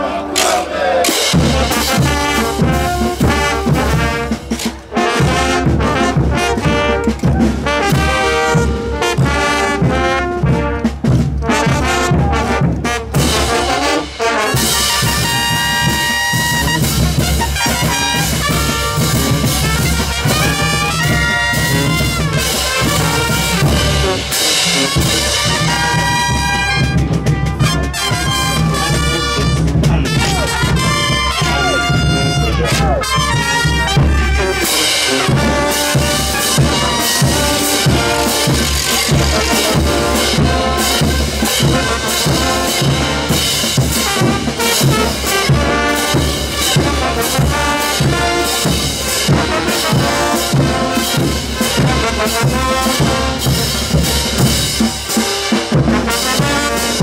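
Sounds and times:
brass band playing: 0.0s - 57.0s
steady drum beat: 0.0s - 57.0s.

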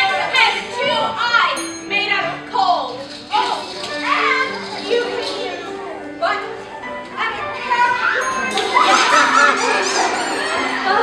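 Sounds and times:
background music with held notes: 0.0s - 11.0s
children calling out: 7.3s - 11.0s.

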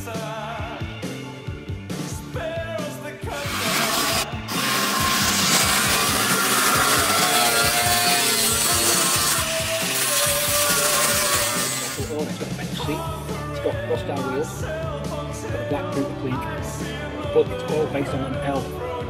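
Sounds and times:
rock music: 0.0s - 19.0s
angle grinder grinding metal: 3.3s - 12.4s.

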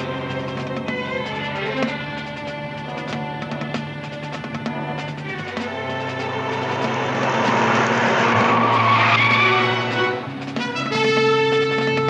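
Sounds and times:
car engine running hard: 0.0s - 12.0s
tyres skidding and squealing: 0.1s - 12.0s
orchestral music: 0.2s - 12.0s.

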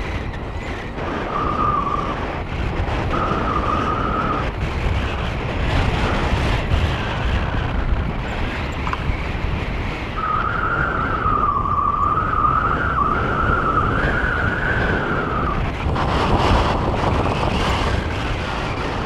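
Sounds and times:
wind buffeting microphone: 0.0s - 19.0s
wavering high tone: 10.2s - 15.6s.

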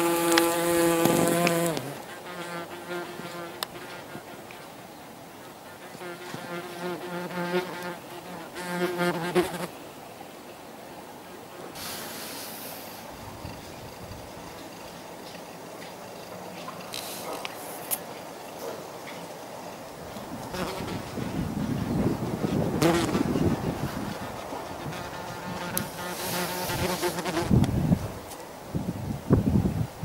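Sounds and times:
wasps buzzing in flight: 0.0s - 4.4s, 5.8s - 9.7s, 20.5s - 27.6s.

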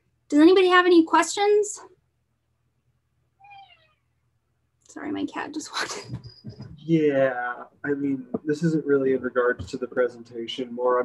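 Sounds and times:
cat meowing: 3.4s - 4.0s.

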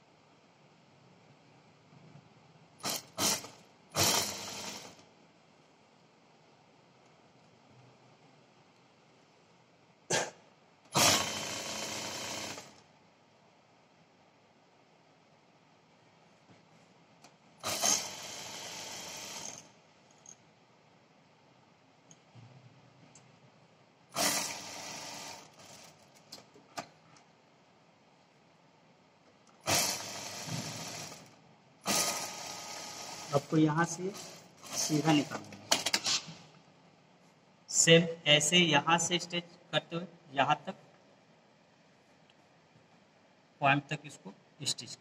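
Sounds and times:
sewing machine stitching: 2.8s - 5.0s, 10.9s - 12.8s, 17.6s - 19.7s, 24.1s - 26.1s, 29.6s - 33.5s, 34.1s - 36.3s.

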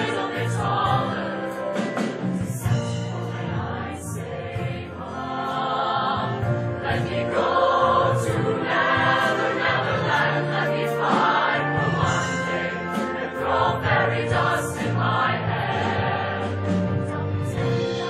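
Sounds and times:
band accompaniment: 0.0s - 18.0s
choir singing in harmony: 0.0s - 18.0s.

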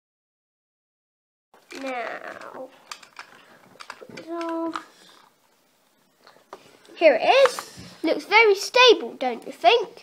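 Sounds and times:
objects clicking on tabletop: 1.7s - 5.3s.

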